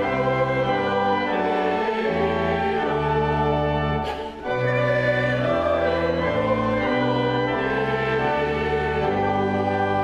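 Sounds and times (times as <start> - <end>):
sacred choir with instruments: 0.0 - 10.0.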